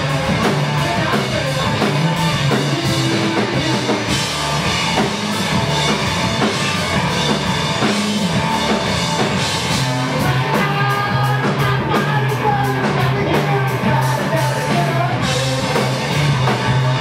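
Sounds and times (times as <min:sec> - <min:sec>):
drum kit: 0:00.0 - 0:17.0
electric bass: 0:00.0 - 0:17.0
electric guitar: 0:00.0 - 0:17.0.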